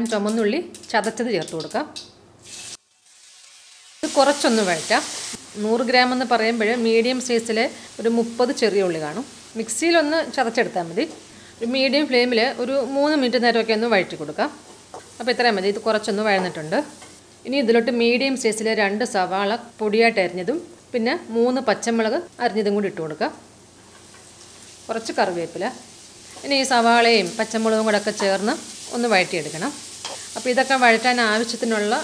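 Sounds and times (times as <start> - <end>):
hot oil sizzling: 2.4 - 18.0, 18.9 - 32.0.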